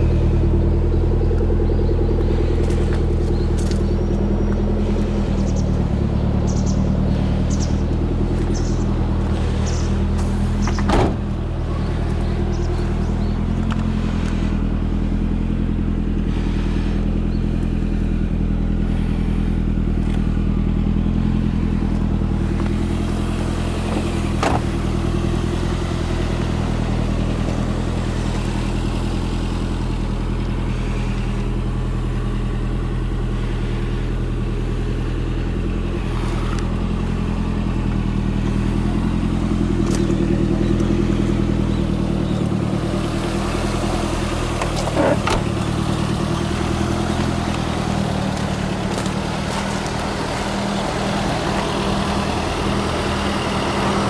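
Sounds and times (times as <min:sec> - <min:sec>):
car engine idling: 0:00.0 - 0:54.0
sharp clicks from car handling: 0:23.9 - 0:24.8, 0:39.8 - 0:41.0, 0:44.2 - 0:45.8.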